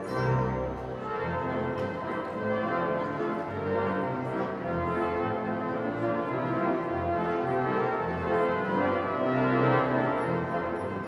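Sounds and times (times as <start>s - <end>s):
pipe organ chords: 0.0s - 11.0s.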